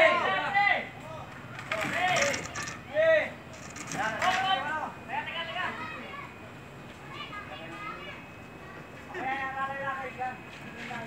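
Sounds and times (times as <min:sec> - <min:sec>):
distant voices talking: 0:00.0 - 0:11.0
outdoor background noise: 0:00.0 - 0:11.0.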